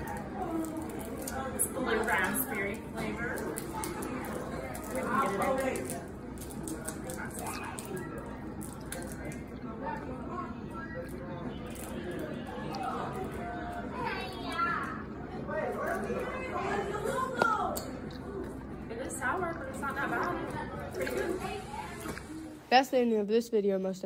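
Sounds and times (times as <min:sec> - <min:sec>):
indistinct voices chattering: 0:00.0 - 0:22.9
faint background music: 0:00.0 - 0:24.0.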